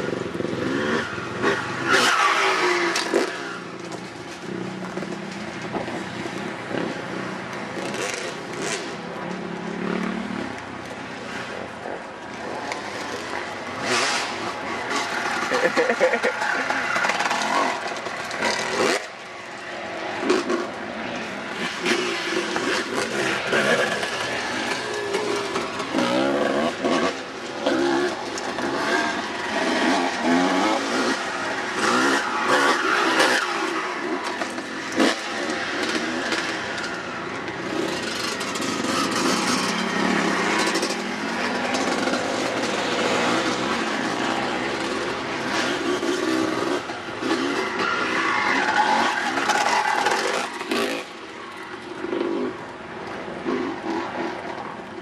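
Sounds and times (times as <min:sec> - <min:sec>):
dirt bike engine revving: 0:05.9 - 0:09.0, 0:21.3 - 0:51.3.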